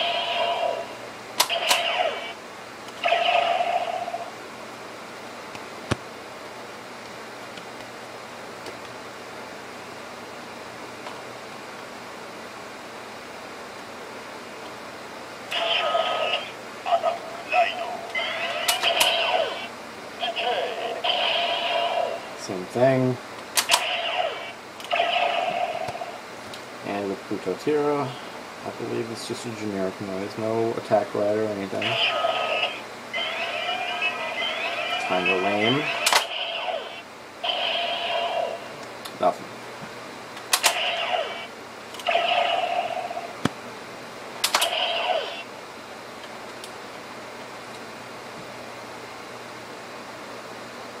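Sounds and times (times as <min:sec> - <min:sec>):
sharp plastic clicks: 0:01.4 - 0:01.9, 0:23.5 - 0:23.9, 0:40.4 - 0:40.8, 0:44.4 - 0:44.7
electronic toy sound effect: 0:01.4 - 0:02.4, 0:03.0 - 0:04.3, 0:15.5 - 0:19.7, 0:20.3 - 0:22.2, 0:23.7 - 0:25.9, 0:31.8 - 0:38.7, 0:40.6 - 0:43.3, 0:44.6 - 0:45.5.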